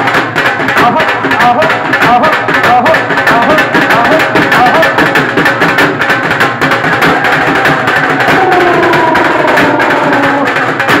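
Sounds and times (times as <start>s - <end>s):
drums in fast rhythm: 0.0s - 11.0s
falling pitched tone: 8.2s - 10.5s.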